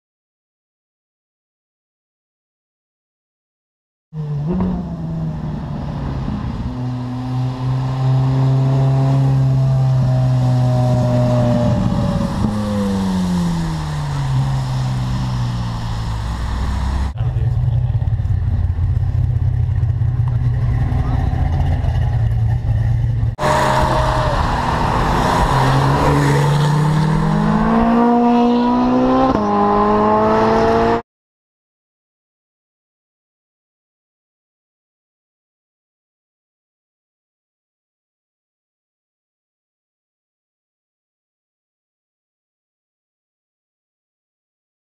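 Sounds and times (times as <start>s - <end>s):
car engine accelerating: 4.2s - 31.0s.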